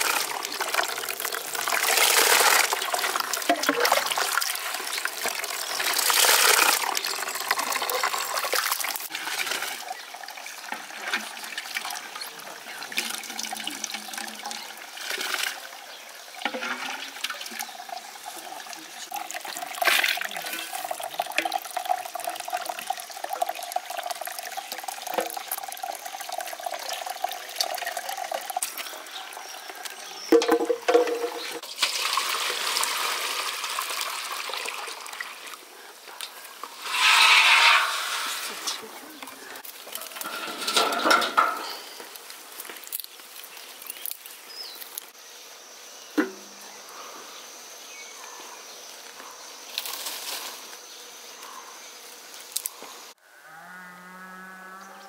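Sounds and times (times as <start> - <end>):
juice dripping into a basin: 0.0 - 9.1, 9.8 - 35.6, 42.0 - 45.1.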